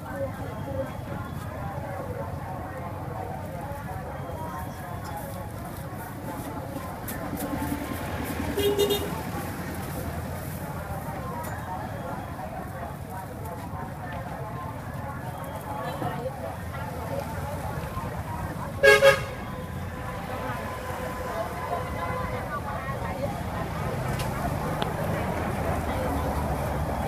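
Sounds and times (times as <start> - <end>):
indistinct voices: 0.0 - 27.0
street noise: 0.0 - 27.0
traffic rumble: 0.0 - 27.0
vehicle horn honking: 8.6 - 9.2, 18.8 - 19.6.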